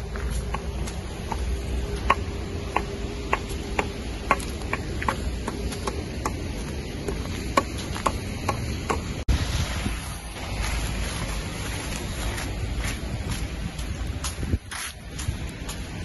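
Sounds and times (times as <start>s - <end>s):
footsteps crunching on ice: 0.0s - 2.4s, 4.4s - 8.8s, 10.4s - 16.0s
wind on microphone: 0.0s - 16.0s.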